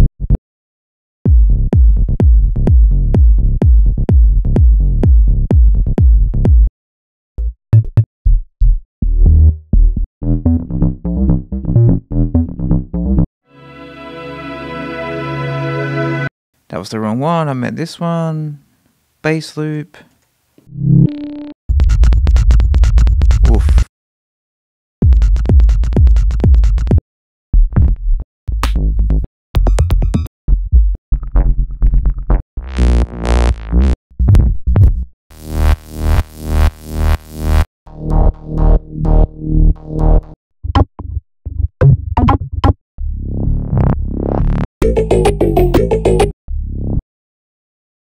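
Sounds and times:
bass loop: 0.0 - 0.4, 1.2 - 6.7, 7.4 - 13.3, 20.7 - 23.9, 25.0 - 27.0, 27.6 - 47.0
synth bass note: 10.2 - 13.3, 20.7 - 21.5, 32.6 - 40.8, 43.0 - 47.0.

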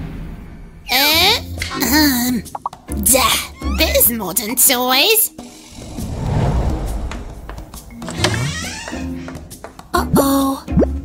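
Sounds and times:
cartoon background music: 0.9 - 5.8, 7.9 - 11.0
squeaky sound effect sliding down: 3.4 - 4.0, 8.0 - 9.2.

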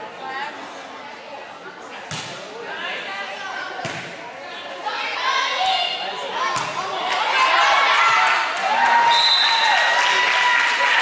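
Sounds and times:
crowd chatter and shouting: 0.0 - 11.0
volleyball hit by hand: 2.1 - 2.4, 3.8 - 4.2, 6.6 - 6.9.

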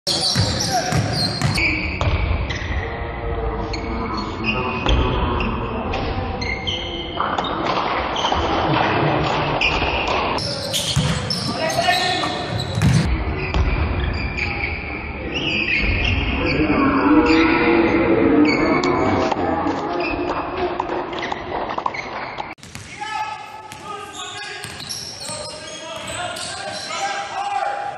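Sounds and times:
sneakers squeaking: 0.1 - 3.0, 3.6 - 8.7, 9.4 - 16.6, 18.4 - 27.9
players' voices echoing: 0.1 - 22.0, 22.6 - 27.9
basketball bouncing: 0.3 - 2.3, 10.9 - 11.6, 12.5 - 13.9, 22.6 - 23.0, 24.6 - 26.2.

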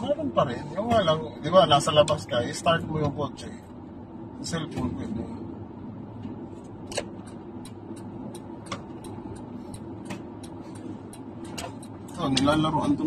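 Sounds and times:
car cabin road and engine noise: 0.0 - 13.0.

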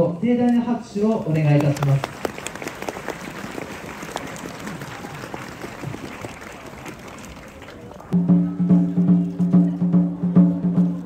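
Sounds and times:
crowd applauding: 1.4 - 8.2.

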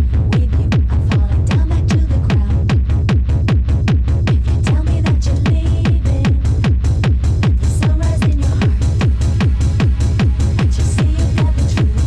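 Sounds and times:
heavy kick drum: 0.0 - 12.0
techno music: 0.0 - 12.0.

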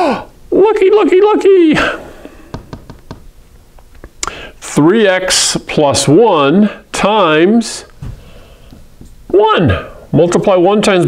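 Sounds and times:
light taps on whiteboard: 2.5 - 3.3.

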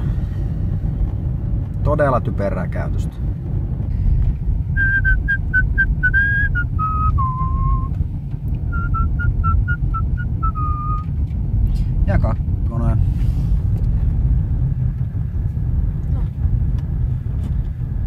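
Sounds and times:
car engine and tyres rumble: 0.0 - 18.0
person whistling a tune: 4.8 - 7.9, 8.7 - 11.1.

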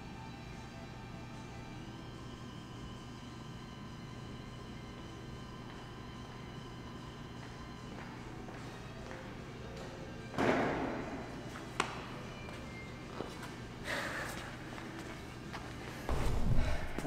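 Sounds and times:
quiet background music: 0.0 - 17.0.

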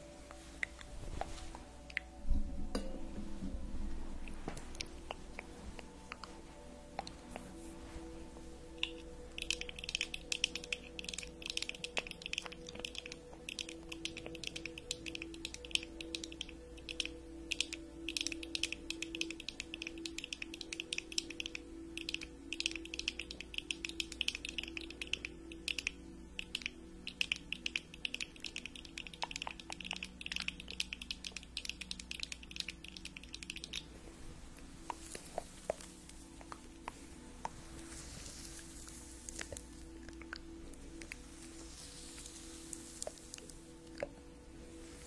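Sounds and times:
faint steady background tones: 0.0 - 45.0.

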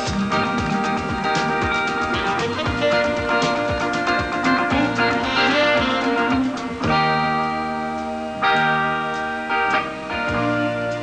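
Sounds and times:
live band with horns: 0.0 - 11.0.

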